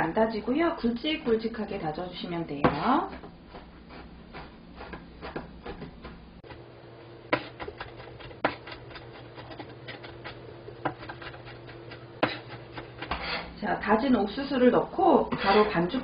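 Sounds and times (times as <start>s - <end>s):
cleaver chopping on cutting board: 12.2s - 13.4s.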